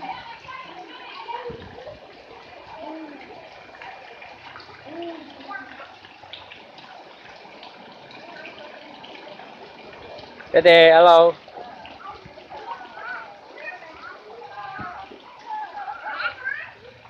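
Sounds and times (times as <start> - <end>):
distant voices: 0.0 - 17.0
water running and splashing: 0.0 - 17.0.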